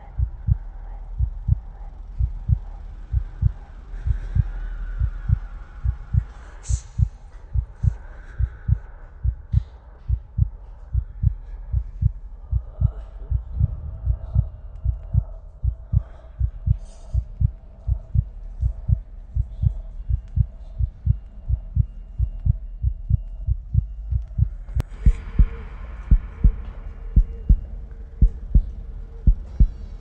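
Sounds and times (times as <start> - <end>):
heartbeat thumps: 0.0 - 29.9.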